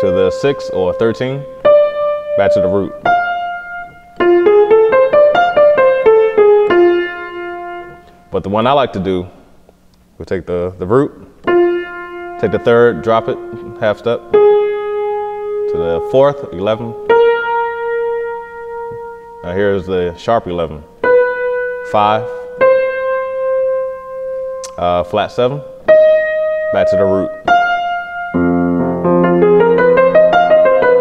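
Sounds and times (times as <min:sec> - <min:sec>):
grand piano playing scale: 0:00.0 - 0:09.4, 0:11.1 - 0:31.0.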